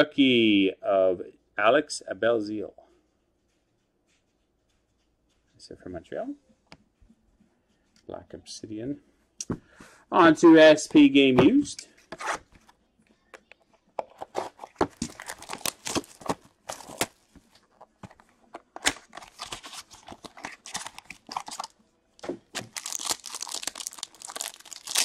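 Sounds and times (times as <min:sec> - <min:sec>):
cardboard and wrapping tearing: 0:14.3 - 0:21.7, 0:22.5 - 0:25.0.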